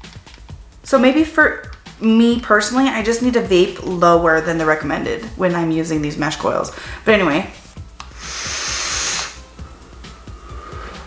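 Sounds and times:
hiss of air drawn through vape: 0:08.0 - 0:11.0
breathy exhale of vapour: 0:08.1 - 0:09.5, 0:10.1 - 0:11.0.

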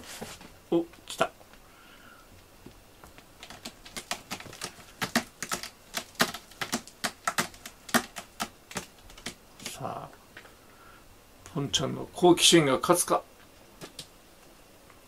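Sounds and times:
cat claws scratching rope post: 0:03.4 - 0:09.8.

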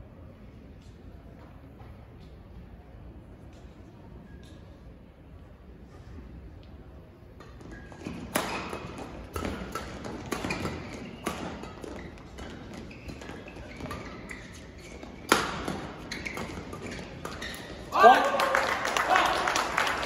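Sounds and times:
rackets hitting shuttlecock: 0:07.4 - 0:17.8.

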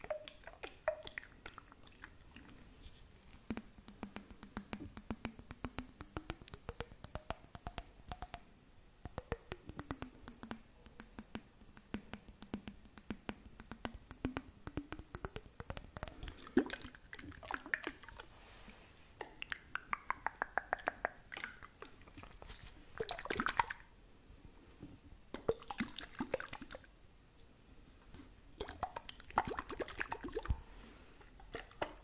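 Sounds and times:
fingernails tapping on glass jar: 0:09.1 - 0:16.4.

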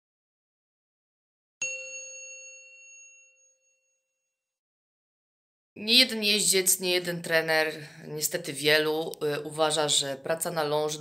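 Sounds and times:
bell-like chime: 0:01.6 - 0:04.6.

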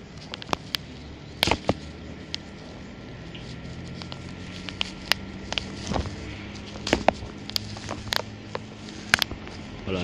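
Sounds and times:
bubble wrap crackling: 0:00.0 - 0:10.0.

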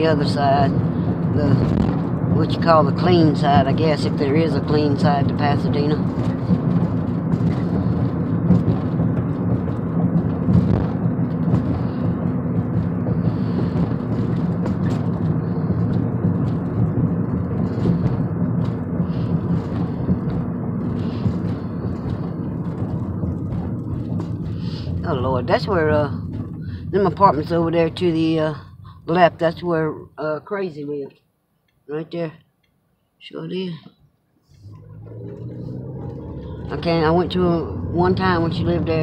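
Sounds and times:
car engine and tyre rumble: 0:00.0 - 0:31.0, 0:34.4 - 0:39.0.

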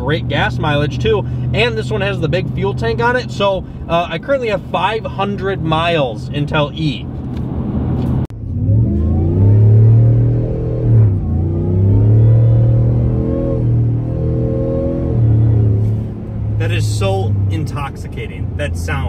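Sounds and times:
engine exhaust revving: 0:00.0 - 0:19.0
supercharger whine: 0:00.0 - 0:19.0.

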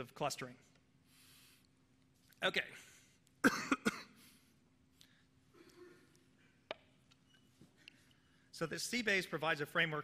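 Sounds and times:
man coughing: 0:03.4 - 0:04.4.

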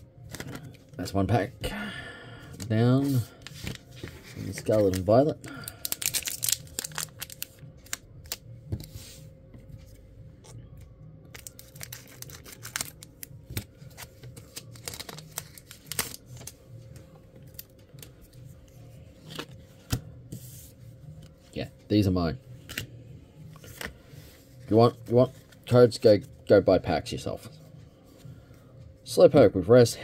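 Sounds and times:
foil wrapper crinkling and tearing: 0:04.5 - 0:08.4, 0:11.3 - 0:16.5.

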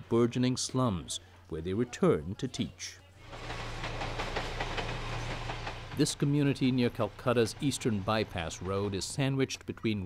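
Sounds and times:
train rumbling on tracks: 0:03.2 - 0:09.2
rapid clicks of train wheels: 0:03.3 - 0:09.2.

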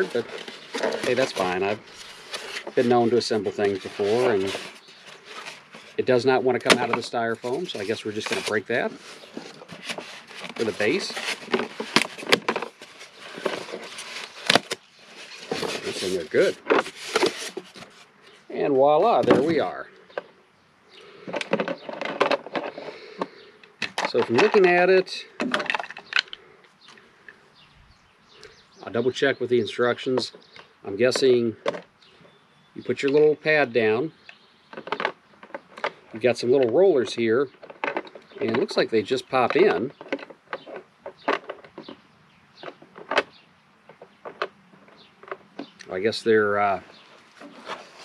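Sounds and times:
plastic parts clicking: 0:37.5 - 0:38.8.

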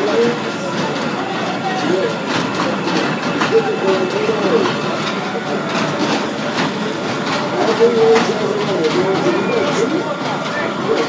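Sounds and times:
ride cars clattering round a track: 0:00.0 - 0:11.0
voices: 0:00.0 - 0:11.0.

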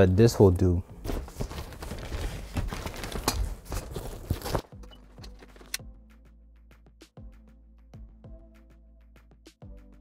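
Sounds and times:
faint background music: 0:00.0 - 0:06.1
fabric rustling: 0:01.0 - 0:04.7.

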